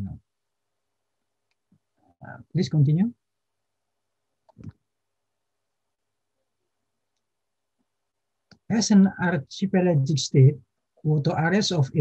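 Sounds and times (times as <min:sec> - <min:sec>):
man speaking over video call: 0:00.0 - 0:00.3, 0:02.2 - 0:03.3, 0:08.5 - 0:12.0.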